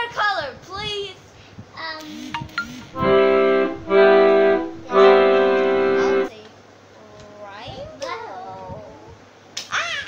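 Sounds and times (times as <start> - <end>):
held keyboard chords: 2.9 - 6.3.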